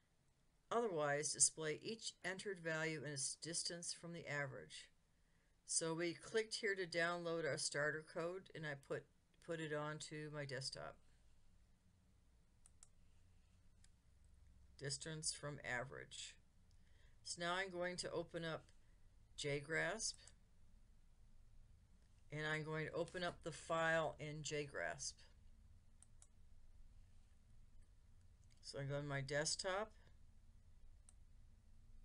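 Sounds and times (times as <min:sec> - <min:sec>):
computer mouse clicks: 0:12.6 - 0:13.0, 0:26.0 - 0:26.4.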